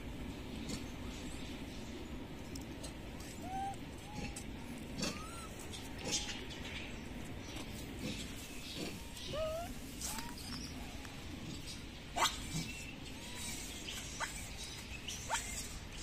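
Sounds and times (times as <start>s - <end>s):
steady background hiss: 0.0s - 16.0s
rising animal squeaks: 3.2s - 6.3s, 8.9s - 11.0s.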